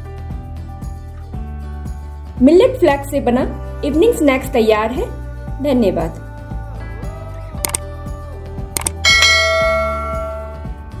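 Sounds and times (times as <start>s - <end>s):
soft background music: 0.0s - 11.0s
bell chime ringing: 9.0s - 10.7s.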